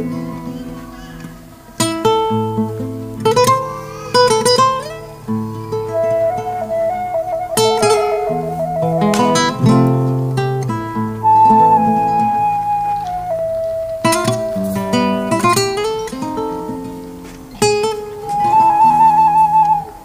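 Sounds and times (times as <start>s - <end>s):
classical guitar fingerpicked: 0.0s - 20.0s
wooden flute slow melody: 3.4s - 20.0s.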